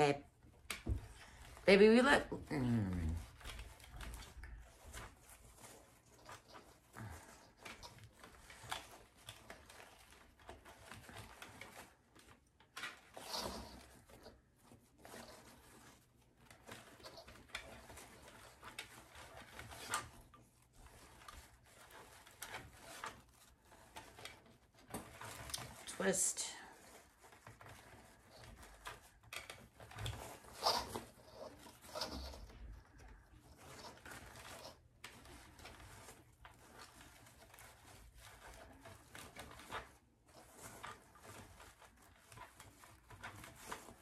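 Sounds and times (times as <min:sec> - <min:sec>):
ribbon rustling and crinkling: 0:00.0 - 0:44.0.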